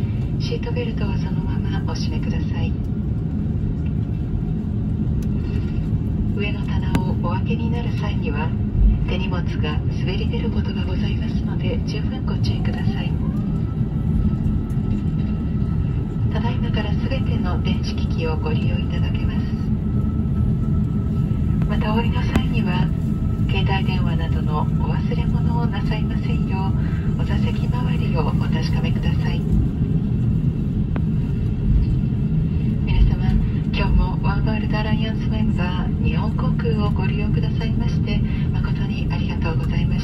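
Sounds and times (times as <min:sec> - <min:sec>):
jet cabin low rumble: 0:00.0 - 0:40.0.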